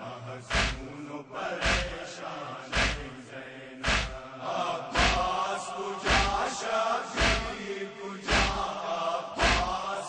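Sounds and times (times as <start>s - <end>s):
male voices chanting a lament: 0.0s - 10.0s
chest-beating slaps: 0.5s - 0.9s, 1.6s - 2.0s, 2.7s - 3.1s, 3.8s - 4.2s, 5.0s - 5.3s, 6.1s - 6.4s, 7.2s - 7.6s, 8.3s - 8.6s, 9.4s - 9.7s.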